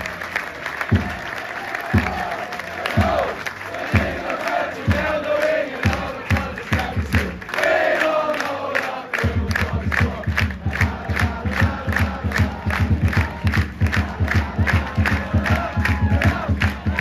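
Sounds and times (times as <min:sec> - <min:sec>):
crowd chanting and cheering: 0:00.0 - 0:17.0
crowd clapping in rhythm: 0:00.0 - 0:17.0.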